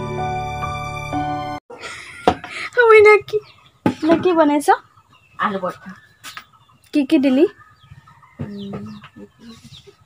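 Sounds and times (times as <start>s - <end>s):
chicken clucking: 3.3s - 10.0s.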